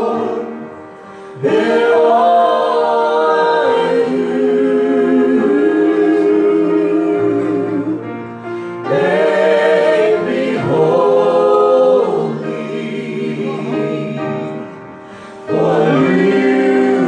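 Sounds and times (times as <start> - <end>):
several voices singing gospel: 0.0 - 17.0.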